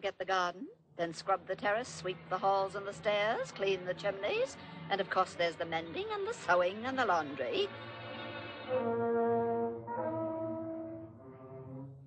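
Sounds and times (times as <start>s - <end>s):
brass playing long held notes: 7.9s - 12.0s.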